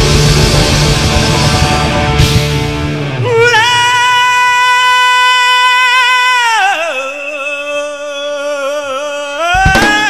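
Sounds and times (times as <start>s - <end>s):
live rock band playing: 0.0s - 3.6s, 9.6s - 10.0s.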